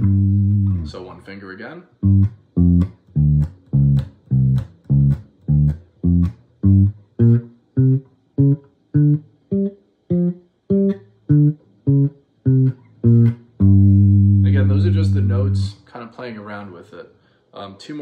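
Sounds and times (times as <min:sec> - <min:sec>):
electric bass guitar notes: 0:00.0 - 0:01.2, 0:02.0 - 0:15.9.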